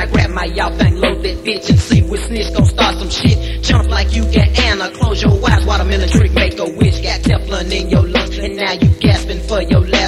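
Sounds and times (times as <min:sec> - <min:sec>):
hip hop beat with kick drums: 0:00.0 - 0:10.0
person rapping: 0:00.0 - 0:10.0
steady bass: 0:00.0 - 0:10.0.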